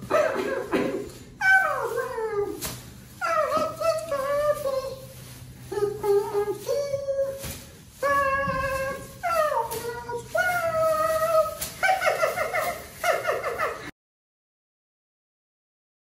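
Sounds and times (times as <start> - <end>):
high wordless wailing voice: 1.4 - 2.6, 3.2 - 13.8.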